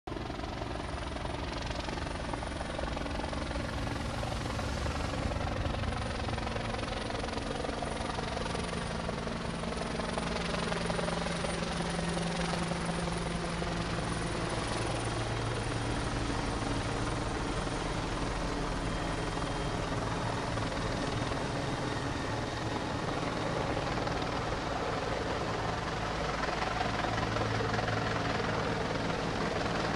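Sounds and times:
emergency vehicle engines droning: 0:00.1 - 0:29.9.

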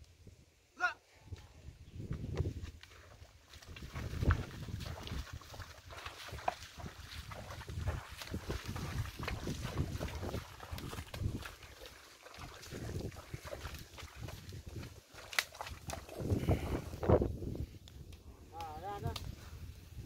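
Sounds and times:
wind rumbling on microphone: 0:01.2 - 0:20.0
hooves squelching in mud: 0:02.0 - 0:19.3.

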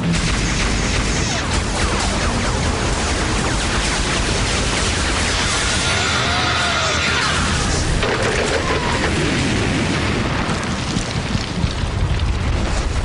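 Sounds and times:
long rumbling cartoon explosion: 0:00.0 - 0:13.0.

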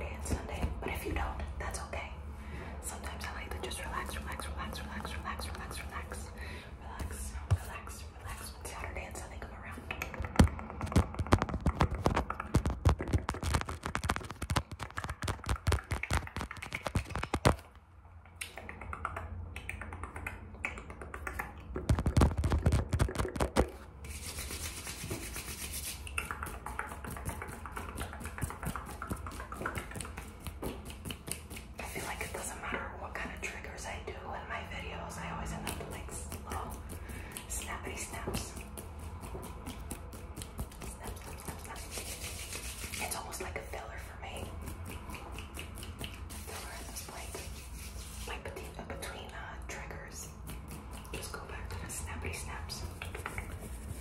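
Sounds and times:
fingernail tapping and scratching: 0:09.7 - 0:17.7, 0:18.5 - 0:32.6
soft mouth sounds: 0:18.2 - 0:23.8, 0:25.9 - 0:34.0, 0:35.2 - 0:54.0.

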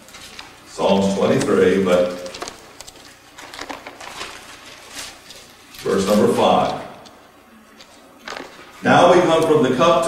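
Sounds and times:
paper pages rustling and turning: 0:00.0 - 0:09.6
man speaking: 0:00.7 - 0:02.4, 0:05.8 - 0:07.0, 0:08.8 - 0:10.0.

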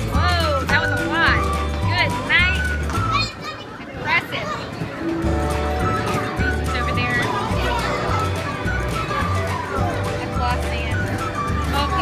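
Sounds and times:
children's excited voices: 0:02.9 - 0:05.0, 0:06.0 - 0:10.2.

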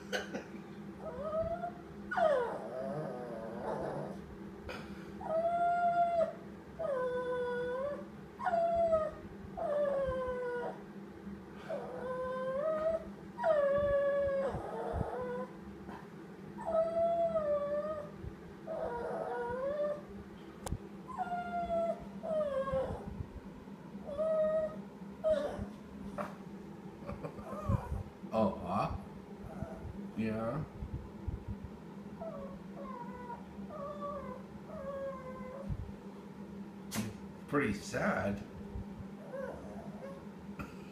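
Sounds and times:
small dog whining and howling: 0:01.0 - 0:04.2, 0:05.2 - 0:10.8, 0:11.6 - 0:15.6, 0:16.6 - 0:20.1, 0:21.0 - 0:23.2, 0:24.0 - 0:25.8, 0:27.4 - 0:28.1, 0:32.2 - 0:35.9, 0:39.2 - 0:40.3.

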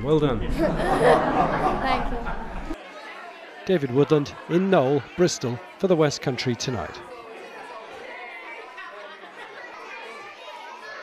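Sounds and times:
crowd of voices talking: 0:00.0 - 0:11.0.

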